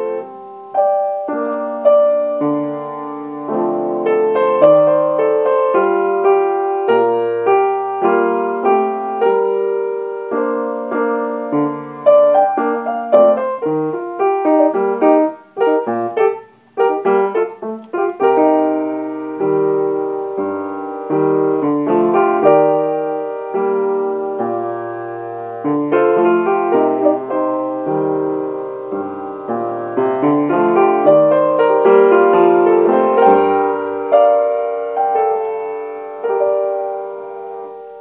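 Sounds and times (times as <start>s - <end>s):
piano chords and melody: 0.0s - 38.0s.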